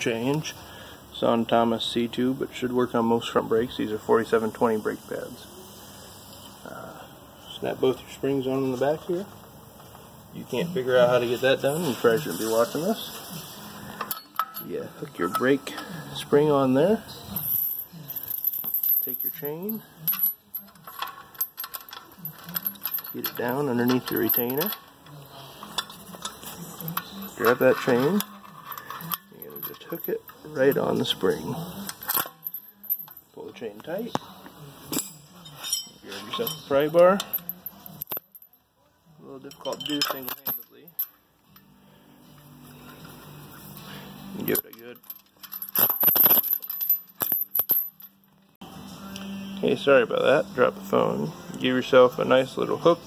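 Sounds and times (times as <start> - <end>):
phone clattering on metal parts: 13.9 - 16.0, 17.3 - 31.1, 31.8 - 33.3, 34.9 - 38.6, 39.4 - 41.6, 44.4 - 48.5
small metal chain clinking: 13.9 - 16.0, 17.1 - 33.6, 34.9 - 38.7, 39.4 - 41.7, 43.7 - 48.5.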